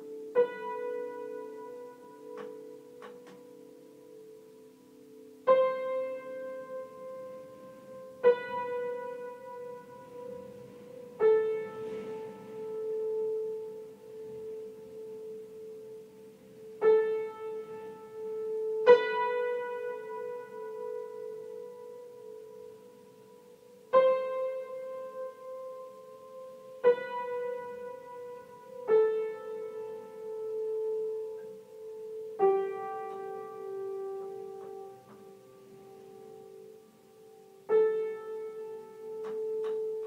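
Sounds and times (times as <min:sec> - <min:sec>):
piano note ringing: 0:00.0 - 0:40.0.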